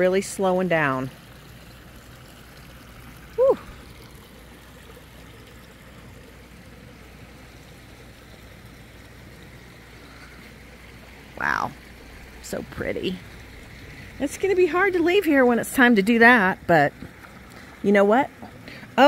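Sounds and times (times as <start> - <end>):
waterfall running: 0.0 - 19.0.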